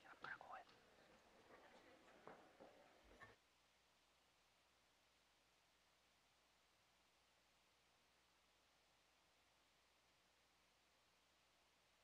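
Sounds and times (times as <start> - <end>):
faint whispered speech: 0.0 - 3.4.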